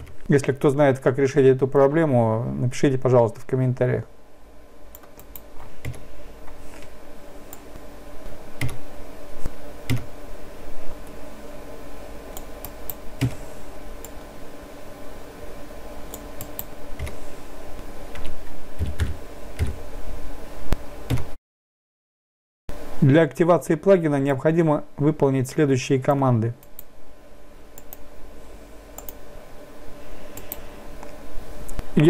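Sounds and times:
faint low hum: 0.0 - 21.4, 22.7 - 32.0
computer keyboard keystrokes: 8.6 - 8.8, 9.9 - 10.1.

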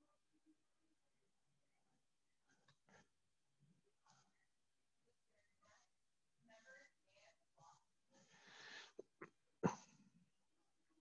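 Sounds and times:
soft breath near microphone: 4.0 - 4.6, 5.4 - 9.1.

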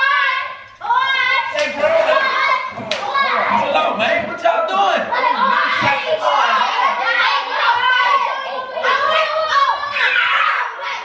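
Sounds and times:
children shouting and chanting: 0.0 - 11.0.

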